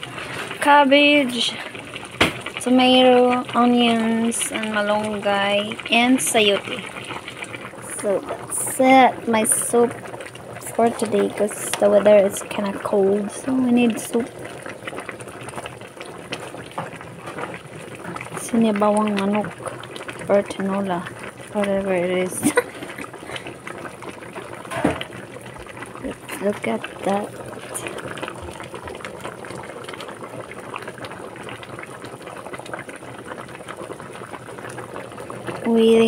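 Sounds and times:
soup boiling with popping bubbles: 0.0s - 36.0s.

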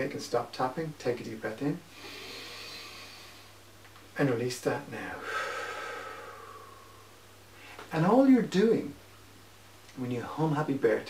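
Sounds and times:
man breathing in deeply: 1.9s - 3.6s, 5.2s - 7.9s.

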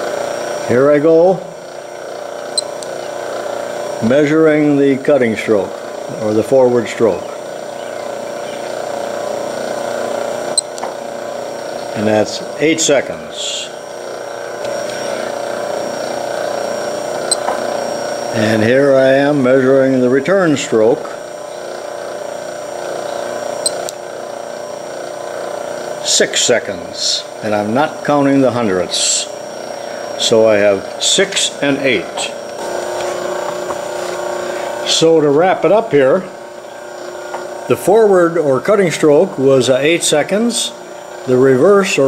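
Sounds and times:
metal shaper mechanical hum: 0.0s - 42.0s.

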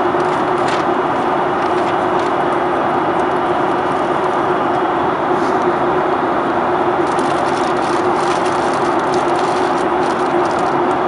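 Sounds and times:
airplane cabin rushing noise: 0.0s - 5.9s, 7.0s - 11.0s
steady droning hum: 0.0s - 11.0s.

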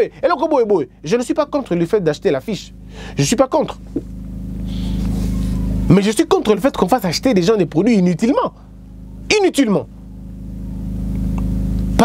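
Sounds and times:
man talking: 0.0s - 3.8s, 5.9s - 8.6s, 9.3s - 9.9s
vehicle engine rumbling: 0.0s - 12.0s.

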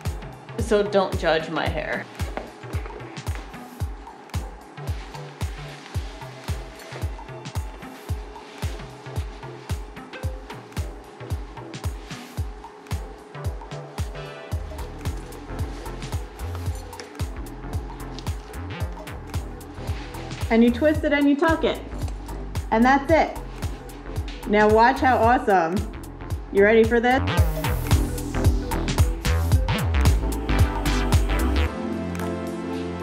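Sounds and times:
background music with steady beat: 0.0s - 33.0s
deep bass line: 2.8s - 32.4s.

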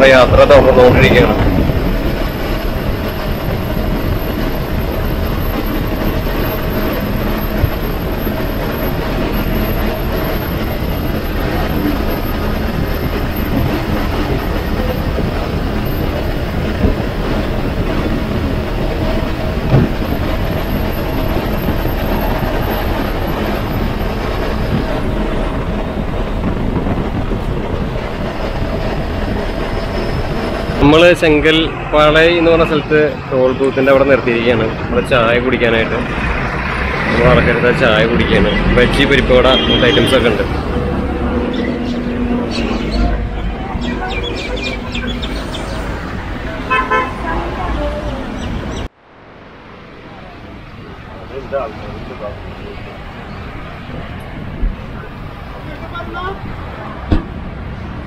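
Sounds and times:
bus engine and road drone: 0.0s - 58.0s.

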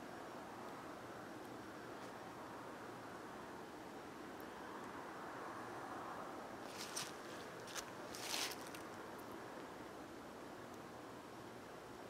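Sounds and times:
faint outdoor hiss: 0.0s - 12.0s
rustling through grass and brush: 6.6s - 9.0s.

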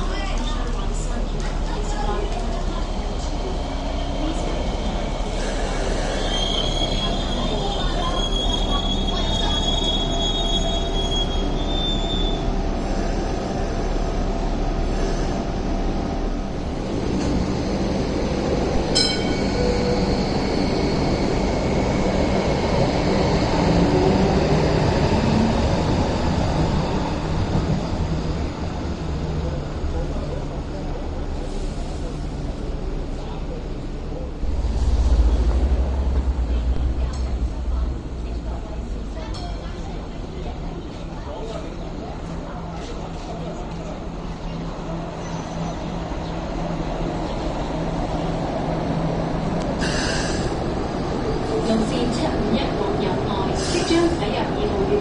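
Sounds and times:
tram rumbling: 0.0s - 55.0s
steel wheels squealing on curve: 6.0s - 12.4s.

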